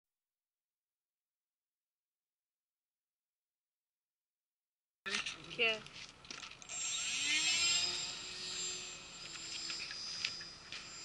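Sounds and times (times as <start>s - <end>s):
electric motor and propeller whine: 6.2s - 11.0s.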